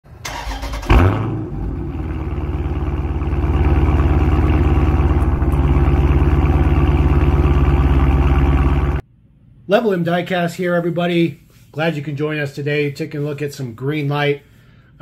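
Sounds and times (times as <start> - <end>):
car engine starting: 0.1 - 9.0
car engine idling: 0.3 - 9.0.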